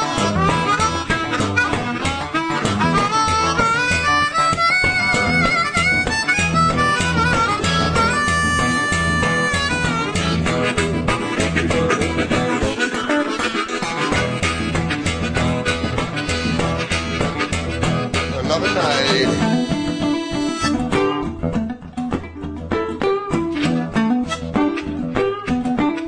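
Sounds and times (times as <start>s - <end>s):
blues harmonica solo: 0.0s - 26.0s
electric guitar accompaniment: 0.0s - 26.0s.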